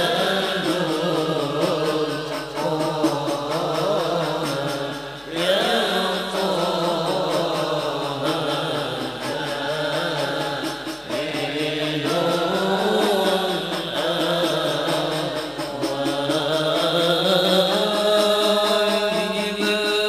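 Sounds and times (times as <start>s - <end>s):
frame drums beating: 0.0s - 20.0s
men singing over microphones: 0.0s - 20.0s.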